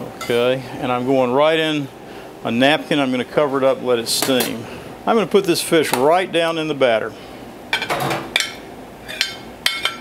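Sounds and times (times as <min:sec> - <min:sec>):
utensil clinking on glass bowl: 0:08.4 - 0:10.0.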